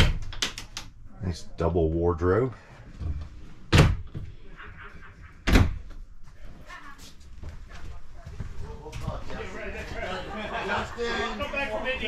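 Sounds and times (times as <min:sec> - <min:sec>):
wooden door thumping shut: 0:03.7 - 0:04.2, 0:05.4 - 0:05.9.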